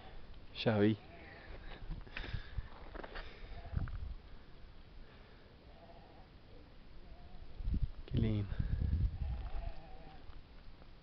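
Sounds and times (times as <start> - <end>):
animal bleating: 1.0 - 1.7, 3.4 - 3.9, 5.6 - 6.4, 7.0 - 7.6, 9.1 - 10.3.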